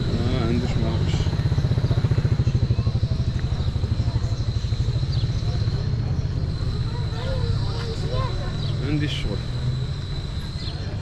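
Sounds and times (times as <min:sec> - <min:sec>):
small motorcycle engine running: 0:00.0 - 0:11.0.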